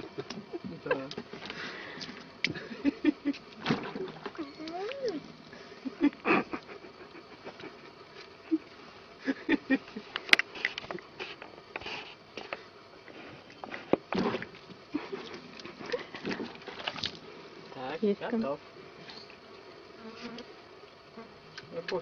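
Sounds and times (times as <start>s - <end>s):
water splashing in plastic bucket: 16.2s - 17.2s.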